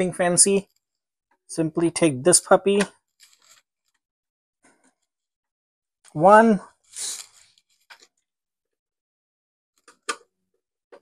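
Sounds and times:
scraping hiss: 6.9 - 7.5.

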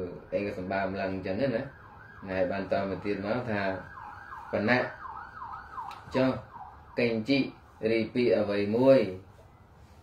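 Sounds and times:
man reading aloud: 0.0 - 5.0, 6.0 - 9.3
yelping siren: 0.0 - 8.5.

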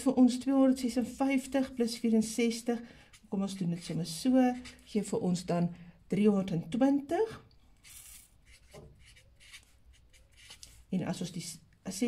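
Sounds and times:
pen scratching on paper: 2.0 - 5.1, 7.8 - 10.9.

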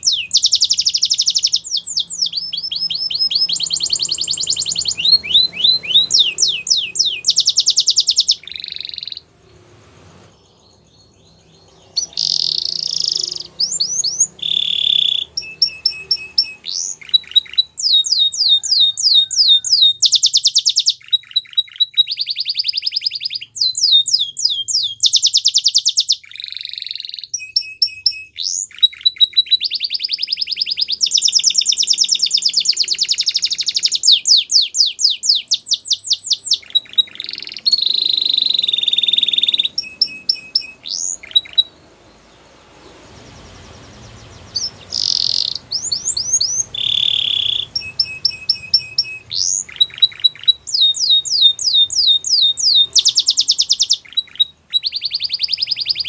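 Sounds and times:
canary singing trills: 0.0 - 56.0.

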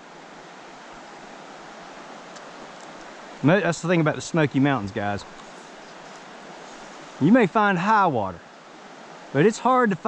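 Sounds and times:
stream water rushing: 0.0 - 10.0.

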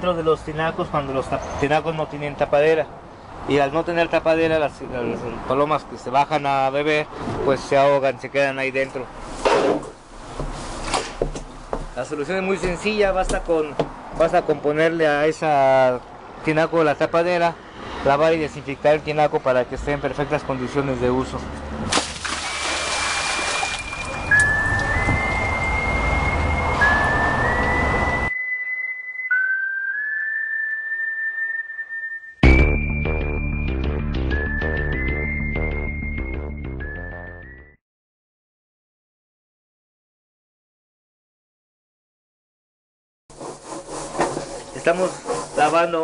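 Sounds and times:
tank-washing work noise: 21.9 - 24.5, 43.3 - 45.9
whistle-like melody: 23.6 - 37.8.

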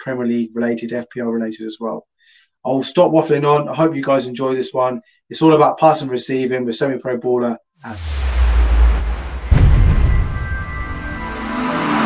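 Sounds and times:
deep rumbling swell: 7.8 - 11.7
heavy boom: 7.8 - 11.9.

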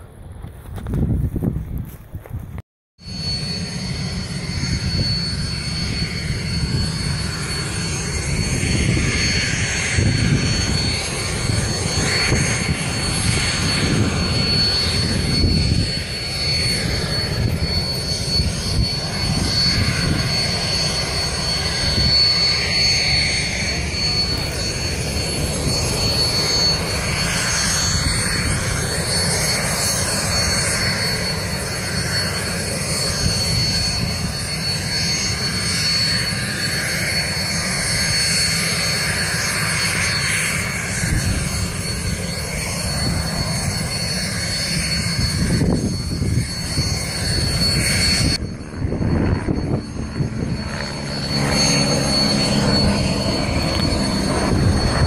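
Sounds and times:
wind rumbling on microphone: 0.0 - 2.6, 3.9 - 35.4, 39.3 - 55.0
aircraft engines droning: 0.0 - 55.0.

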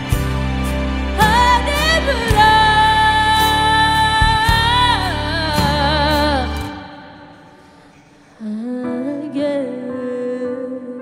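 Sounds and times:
woman singing a ballad: 1.1 - 11.0.

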